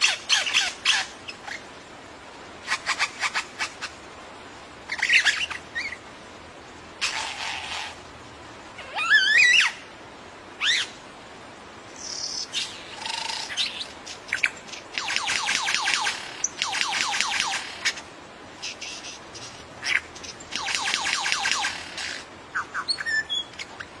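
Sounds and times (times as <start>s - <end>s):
lyrebird singing: 4.9s - 6.0s, 12.0s - 18.0s, 18.6s - 23.9s.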